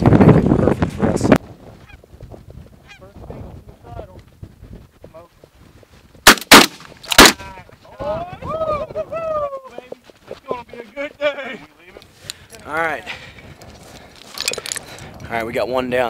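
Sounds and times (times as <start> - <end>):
shotgun blasts: 6.2 - 7.4.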